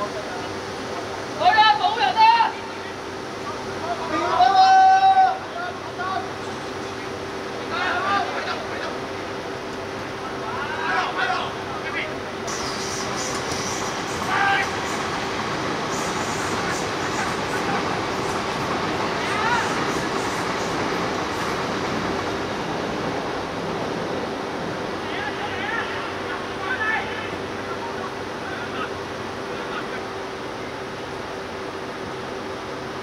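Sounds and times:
train rumbling and rattling: 0.0 - 33.0
players shouting: 14.2 - 14.9, 19.2 - 20.0.

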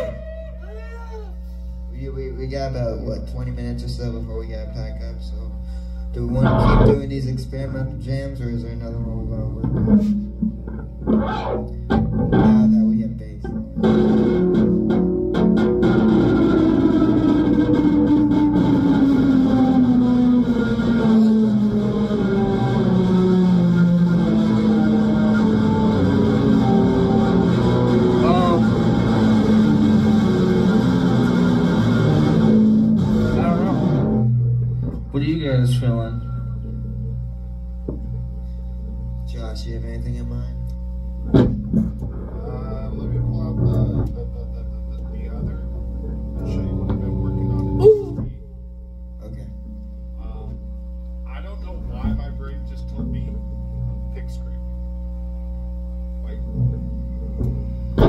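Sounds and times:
droning guitar tone sliding down: 0.0 - 48.6, 49.6 - 58.0
amplifier hum: 0.0 - 58.0
electric guitars jamming: 5.8 - 39.0, 40.7 - 48.5, 55.6 - 58.0.

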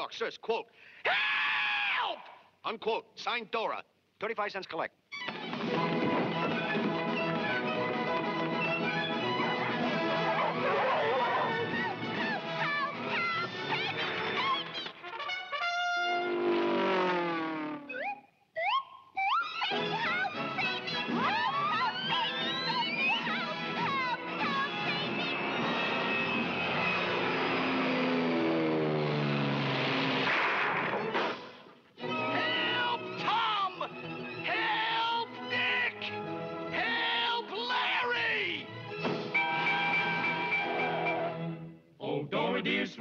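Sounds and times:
orchestral cartoon music with brass: 5.5 - 14.2, 15.0 - 17.9, 32.0 - 43.0.

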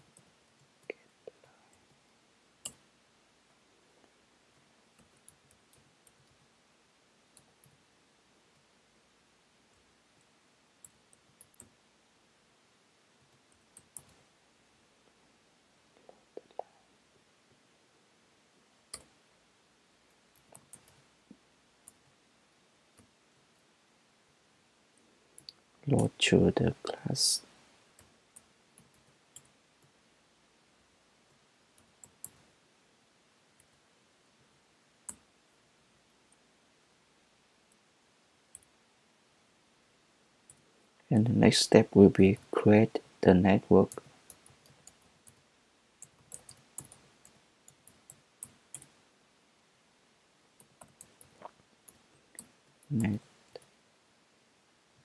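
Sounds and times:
person speaking: 25.8 - 27.5, 41.1 - 44.0, 52.9 - 53.3.

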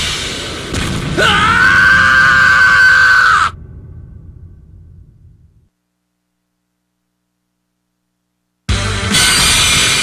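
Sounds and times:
man screaming: 1.2 - 3.6
low rumble: 3.5 - 5.7.

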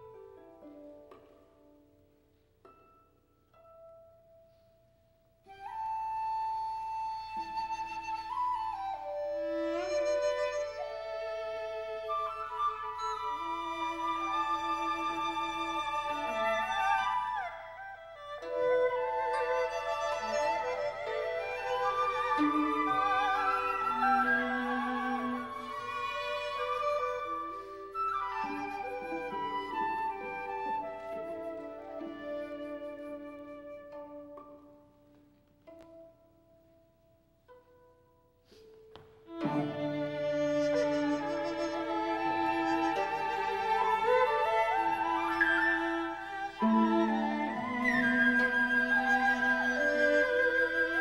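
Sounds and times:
flute melody: 5.4 - 36.2, 38.5 - 51.0
chamber ensemble playing: 5.8 - 35.0, 38.6 - 51.0
flute holding high note: 39.3 - 51.0.

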